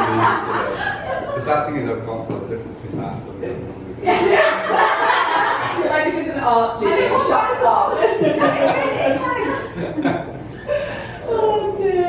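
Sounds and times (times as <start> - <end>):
women laughing: 0.0 - 1.5, 4.0 - 6.2, 6.8 - 11.7.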